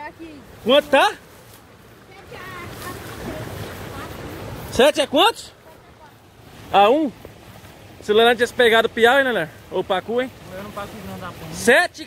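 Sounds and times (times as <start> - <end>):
stream water rushing: 0.0 - 12.0.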